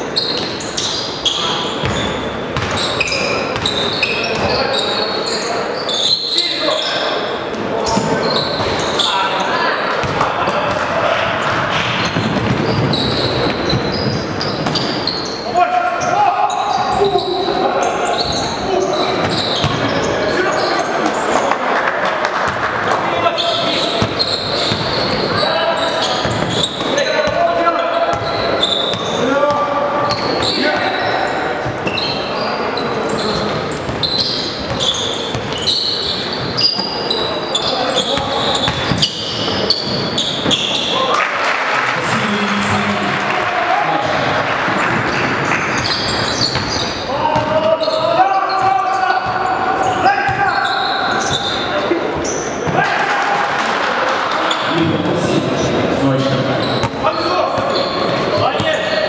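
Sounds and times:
basketball bouncing on court: 0:01.8 - 0:04.6, 0:10.0 - 0:15.1, 0:19.1 - 0:20.0, 0:23.5 - 0:25.4, 0:26.1 - 0:27.4, 0:33.3 - 0:36.6, 0:37.6 - 0:40.8, 0:44.8 - 0:49.5.

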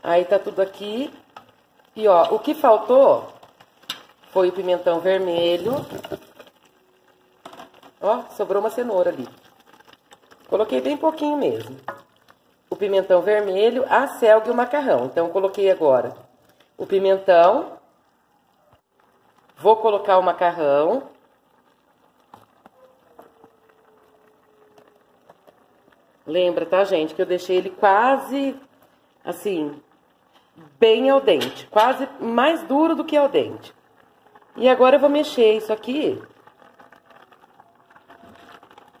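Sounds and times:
noodles pattering into pot: 0:00.0 - 0:17.4, 0:18.8 - 0:39.0
vegetable pieces dropping into pot: 0:00.8 - 0:17.1.

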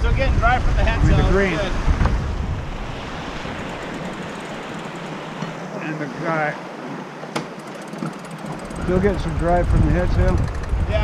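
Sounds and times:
wind buffeting microphone: 0:00.0 - 0:05.8, 0:07.6 - 0:11.0
wind and water hiss: 0:00.0 - 0:11.0.

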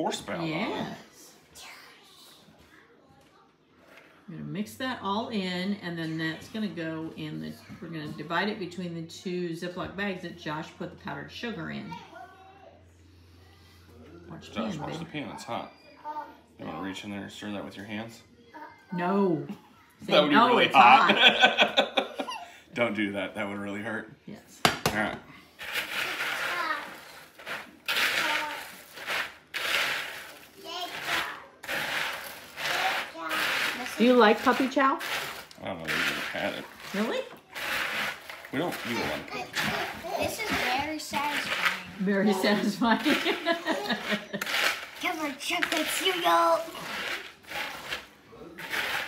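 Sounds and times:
wooden spoon stirring dry cereal: 0:25.6 - 0:49.0.

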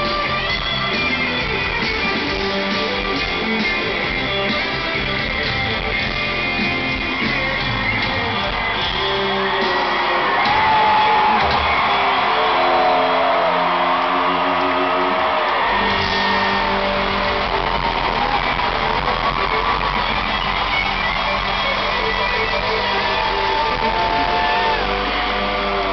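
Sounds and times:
electric guitar solo: 0:00.0 - 0:25.9
live country band: 0:00.0 - 0:25.9.

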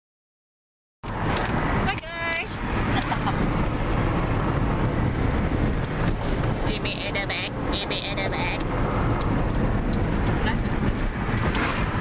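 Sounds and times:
car road and engine noise: 0:01.0 - 0:12.0.

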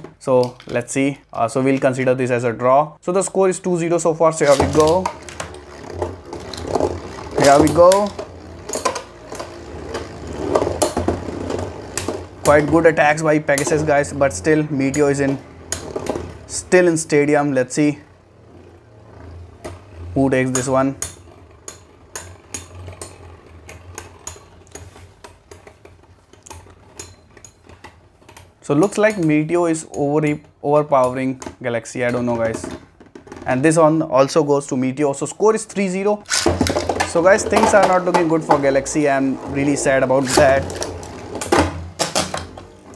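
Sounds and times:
spinning top whirring: 0:04.3 - 0:30.0, 0:35.6 - 0:42.9
spinning tops clashing metallic clicks: 0:36.2 - 0:38.4.

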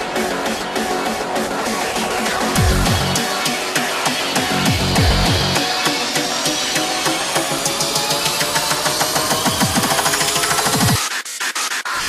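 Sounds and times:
distorted kick drums: 0:02.4 - 0:03.3, 0:04.4 - 0:05.6.

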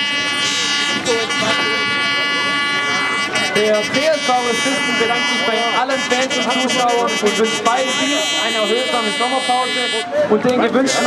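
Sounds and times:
air horn blast: 0:00.0 - 0:10.1
people shouting and cheering: 0:01.0 - 0:11.0.

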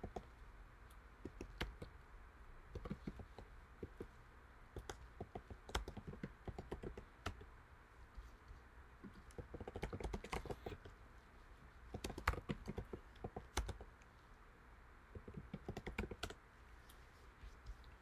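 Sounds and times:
typing on computer keyboard: 0:01.2 - 0:01.9, 0:02.7 - 0:04.1, 0:04.8 - 0:07.5, 0:09.0 - 0:10.9, 0:11.9 - 0:13.9, 0:15.1 - 0:16.4.

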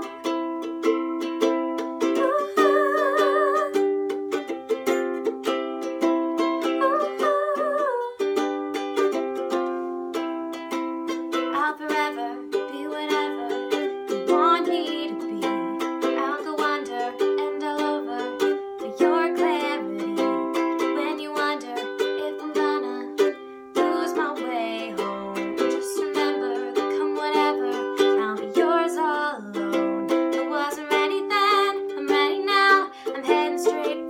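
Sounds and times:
woman singing: 0:00.0 - 0:01.2, 0:02.0 - 0:04.2, 0:06.4 - 0:08.4, 0:11.4 - 0:34.0
ukulele strumming: 0:00.0 - 0:34.0.

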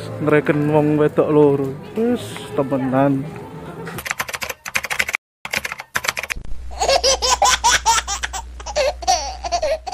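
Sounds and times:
keyboard typing clicks: 0:04.0 - 0:06.4
high-pitched laughing: 0:06.7 - 0:09.9.

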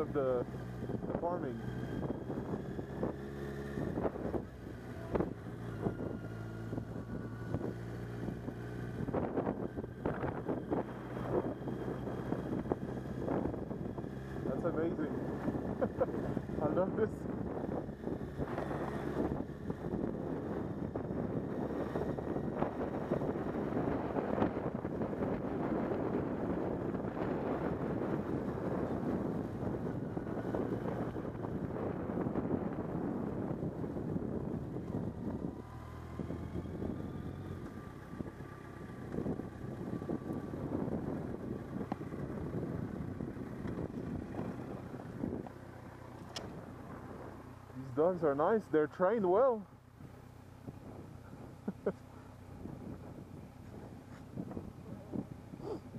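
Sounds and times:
motorcycle engine running: 0:00.0 - 0:55.9
wind buffeting microphone: 0:00.7 - 0:48.6, 0:52.5 - 0:55.9.

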